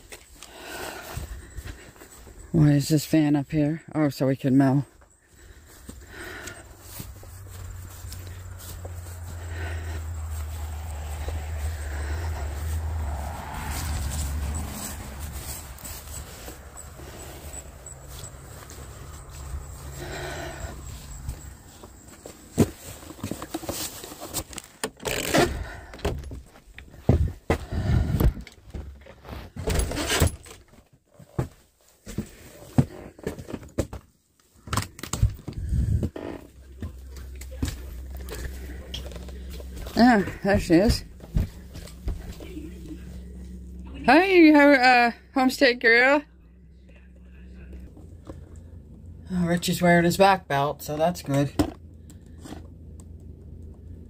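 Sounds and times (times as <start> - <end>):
steady low rumble: 4.8 - 23.1, 35.2 - 54.0
footsteps: 4.8 - 30.4, 35.2 - 44.3.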